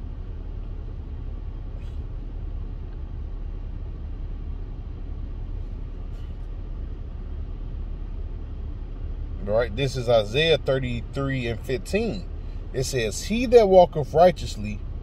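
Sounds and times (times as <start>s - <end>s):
car cabin rumble: 0.0s - 15.0s.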